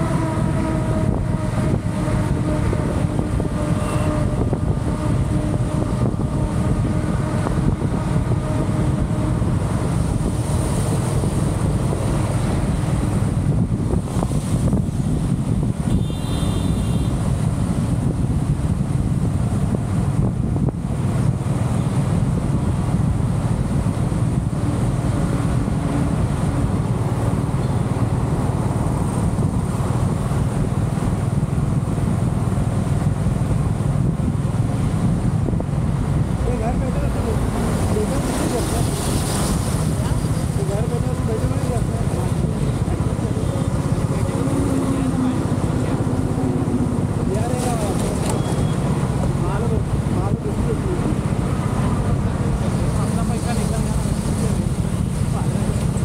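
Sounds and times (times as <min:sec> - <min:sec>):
road and traffic noise: 0:00.0 - 0:56.0
wind buffeting microphone: 0:00.0 - 0:56.0
brief high beep: 0:48.3 - 0:48.8.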